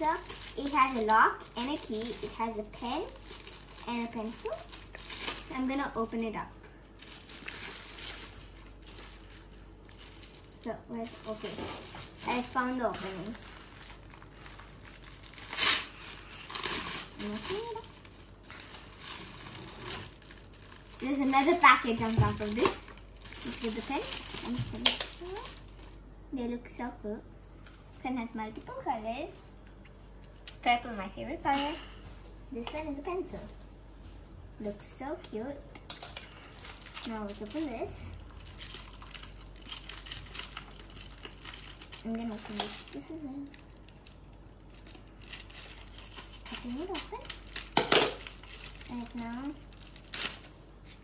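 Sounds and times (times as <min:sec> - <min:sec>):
plastic bag crinkling: 0:00.0 - 0:26.1, 0:36.0 - 0:51.0
scissors snipping wrapping: 0:50.0 - 0:51.0.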